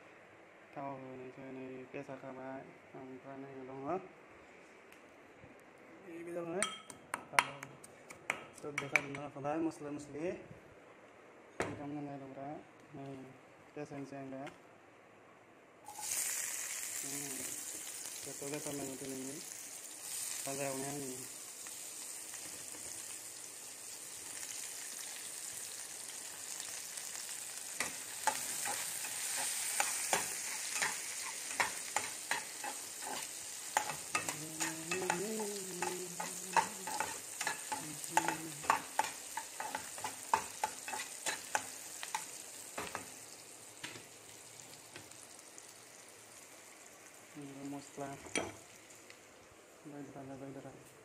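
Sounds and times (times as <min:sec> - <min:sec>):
onions sizzling in a pan: 0:15.8 - 0:50.6
utensil scraping a pan: 0:28.2 - 0:35.2.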